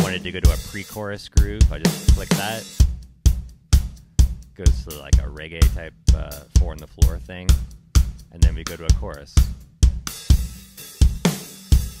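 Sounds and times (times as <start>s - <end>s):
kick and snare drum beat: 0.0s - 12.0s.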